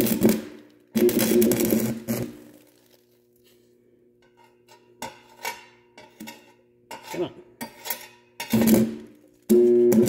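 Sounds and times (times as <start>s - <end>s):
welding electrode crackling strikes: 0.0s - 2.9s, 8.6s - 9.0s
welder low hum: 9.5s - 10.0s.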